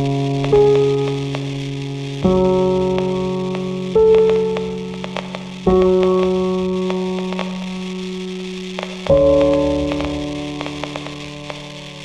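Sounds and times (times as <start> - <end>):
faint ticks: 0.0 - 8.1, 8.7 - 12.0
soft slow piano music: 0.0 - 12.0.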